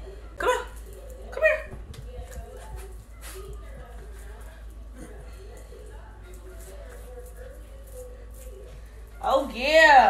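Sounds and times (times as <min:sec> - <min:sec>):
faint murmured voice: 0:00.0 - 0:09.2
low room hum: 0:00.0 - 0:10.0.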